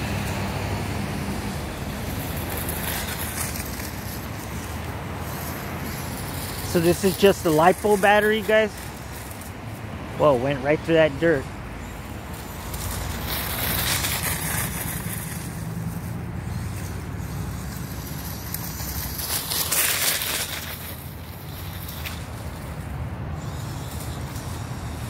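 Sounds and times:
toy truck motor humming: 0.0s - 9.8s, 10.4s - 25.0s.

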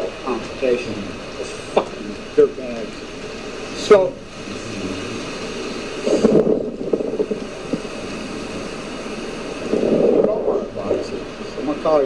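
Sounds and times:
ocean surf rushing: 0.0s - 12.0s
wind: 0.0s - 12.0s.

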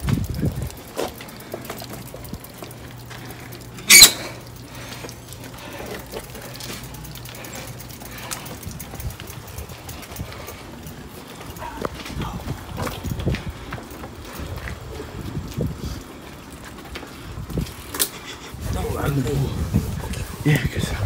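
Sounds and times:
faint movement sounds: 0.0s - 21.0s.

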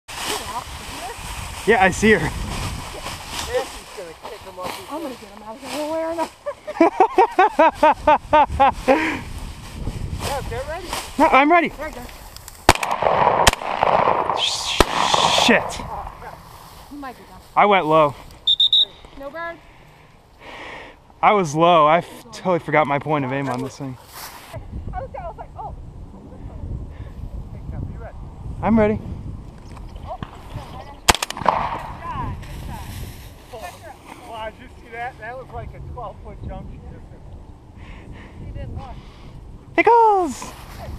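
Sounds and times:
shotgun shots: 12.7s - 16.3s, 31.1s - 32.0s.

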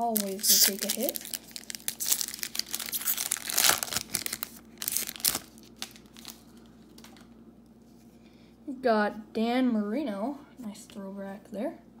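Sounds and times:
foil wrapper crinkling: 0.0s - 7.2s.

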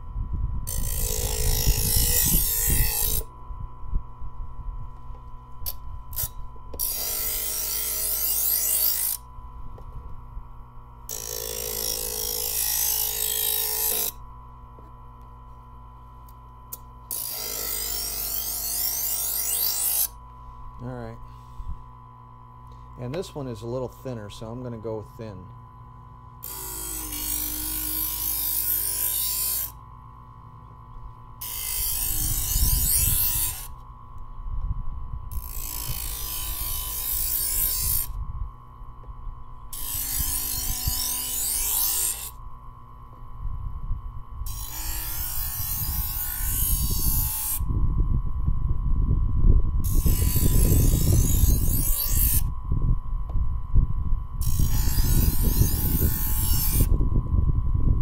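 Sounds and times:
wind rumble on microphone: 0.0s - 6.8s, 31.7s - 41.2s, 43.3s - 58.0s
knife sharpener motor humming: 0.6s - 43.4s, 44.0s - 47.8s, 49.8s - 53.4s, 54.2s - 57.3s
knife blade grinding: 0.7s - 3.3s, 5.6s - 9.3s, 11.1s - 14.2s, 16.7s - 20.2s, 26.4s - 29.8s, 31.4s - 33.8s, 35.3s - 38.2s, 39.7s - 42.4s, 44.4s - 47.7s, 49.8s - 52.5s, 54.4s - 57.0s.

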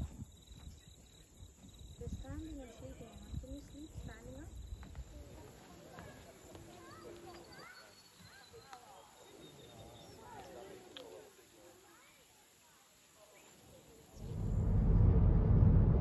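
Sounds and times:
distant people talking: 2.0s - 14.5s
low outdoor rumble: 14.2s - 16.0s.

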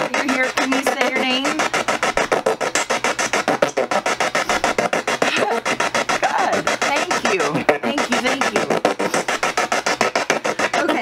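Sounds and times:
choppy radio static from speaker: 0.0s - 11.0s.

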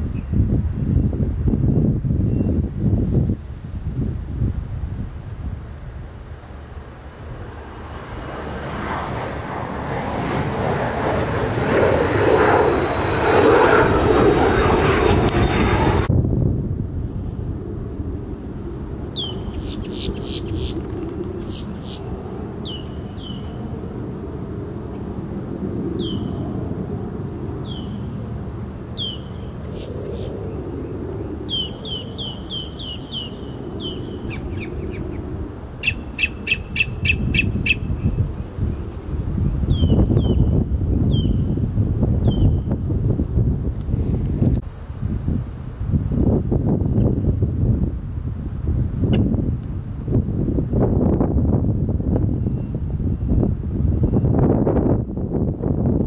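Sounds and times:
gusting low rumble: 0.0s - 56.0s
birds chirping: 19.2s - 20.8s, 21.4s - 23.6s, 31.5s - 35.2s.

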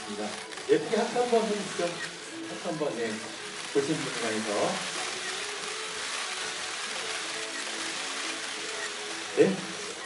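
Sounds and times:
background music: 0.0s - 10.0s
camera shutters firing: 0.1s - 0.8s, 3.5s - 9.2s.

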